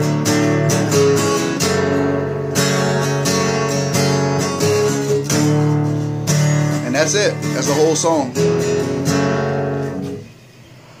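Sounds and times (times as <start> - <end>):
acoustic guitar chord strummed: 0.0 - 11.0.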